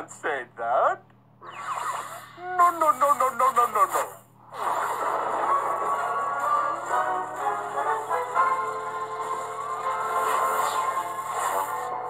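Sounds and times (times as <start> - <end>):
crackling electricity effect: 1.4 - 12.0.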